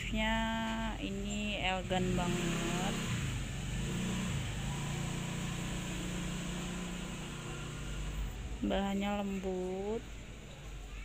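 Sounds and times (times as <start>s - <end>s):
low motor hum: 0.0s - 10.5s.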